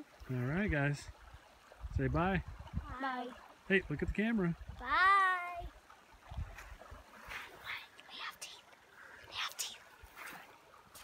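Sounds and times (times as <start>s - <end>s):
child saying bye: 2.8s - 3.3s, 4.8s - 5.7s.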